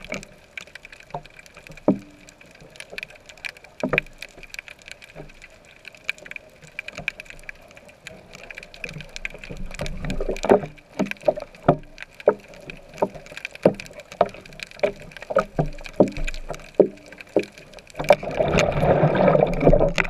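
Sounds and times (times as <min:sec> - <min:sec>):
low rush of moving water: 0:00.0 - 0:20.0
muffled underwater knocks and pops: 0:01.2 - 0:02.3, 0:08.8 - 0:20.0.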